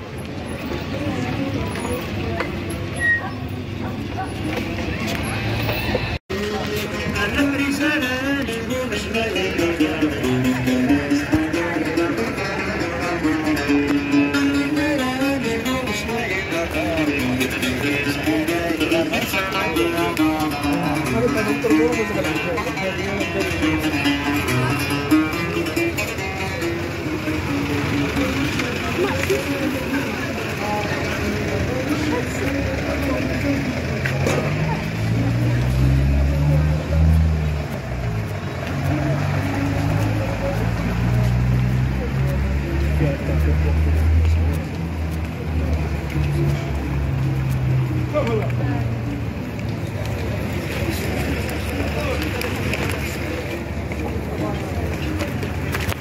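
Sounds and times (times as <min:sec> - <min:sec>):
low engine sound: 0:03.5 - 0:56.0
strummed string instrument: 0:05.8 - 0:48.6.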